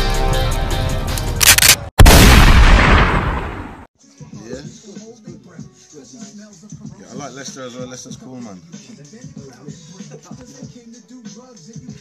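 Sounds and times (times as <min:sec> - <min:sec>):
cinematic boom hit: 0:02.0 - 0:03.8.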